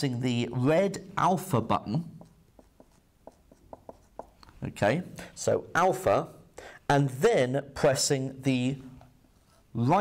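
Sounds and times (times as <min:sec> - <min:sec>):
marker writing on whiteboard: 0:01.4 - 0:05.0.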